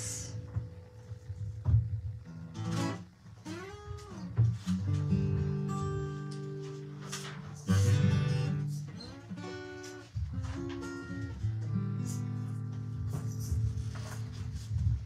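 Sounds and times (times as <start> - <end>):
acoustic guitar strummed chords: 0.0 - 15.0.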